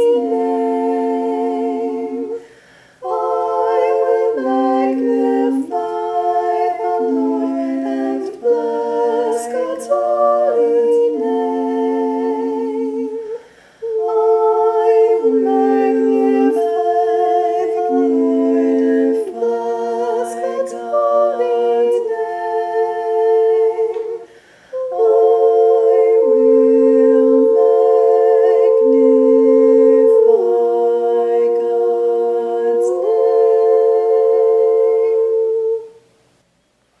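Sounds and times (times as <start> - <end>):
woman singing a cappella chant: 0.0 - 36.0.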